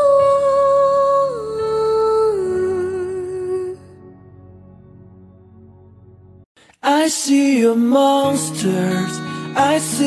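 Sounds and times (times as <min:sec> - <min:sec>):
pop music: 0:06.8 - 0:10.0.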